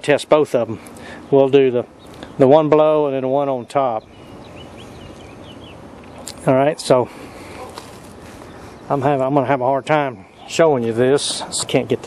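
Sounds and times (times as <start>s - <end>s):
outdoor background hiss: 0.0s - 12.0s
bird chirping: 0.9s - 12.0s.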